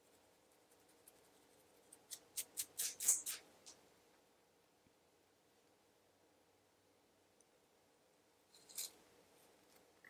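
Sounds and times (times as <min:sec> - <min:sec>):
scratching scalp: 0:00.0 - 0:03.8.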